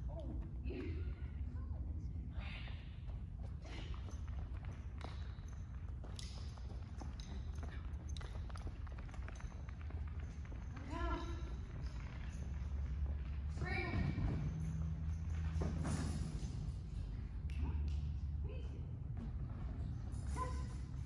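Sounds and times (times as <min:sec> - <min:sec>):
low hum in a hall: 0:00.0 - 0:21.0.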